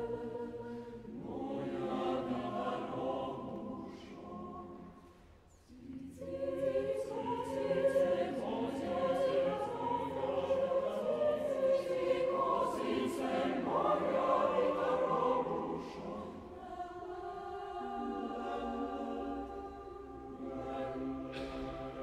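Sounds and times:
mixed choir singing a cappella: 0.0s - 22.0s.

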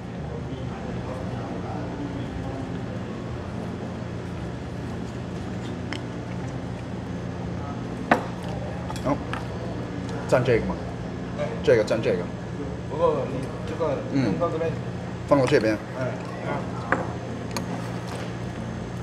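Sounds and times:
faint murmur of voices: 0.0s - 19.0s
steady low hum: 0.0s - 19.0s.

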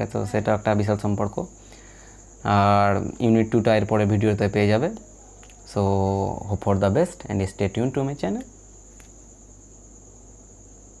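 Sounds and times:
faint click: 5.4s - 5.6s.

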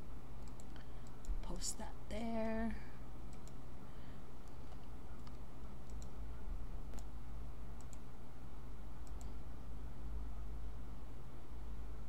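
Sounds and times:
steady low hum: 0.0s - 12.0s
computer mouse clicking: 0.4s - 1.4s, 3.3s - 3.6s, 4.4s - 6.2s, 6.9s - 7.1s, 7.8s - 8.1s, 9.0s - 9.4s.

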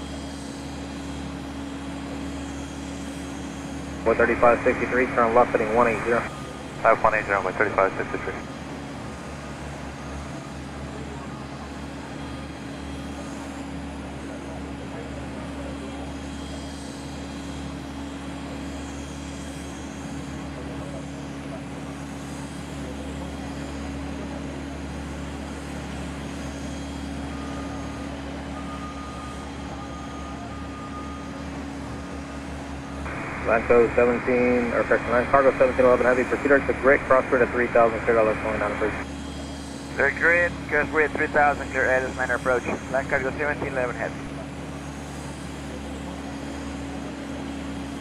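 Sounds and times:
jet engines droning: 0.0s - 48.0s.

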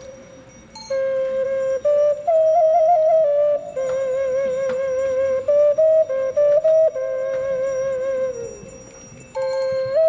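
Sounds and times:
whistle playing folk tune: 0.0s - 10.0s.

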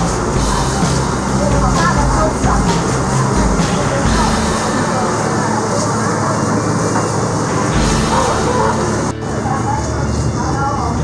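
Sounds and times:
deep engine rumble: 0.0s - 11.0s
vehicle and street noise: 0.0s - 11.0s.

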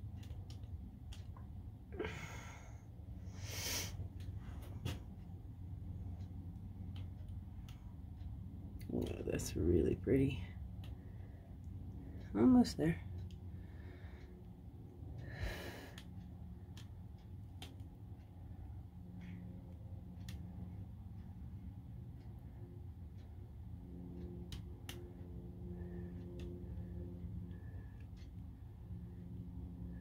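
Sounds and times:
low steady hum: 0.0s - 30.0s.

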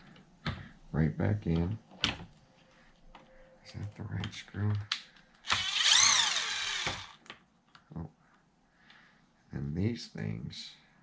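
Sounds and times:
power tool motor whirring: 5.5s - 7.2s.

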